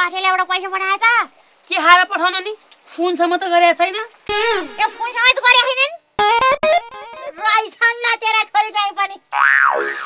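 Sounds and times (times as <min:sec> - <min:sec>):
person speaking: 0:04.3 - 0:09.1.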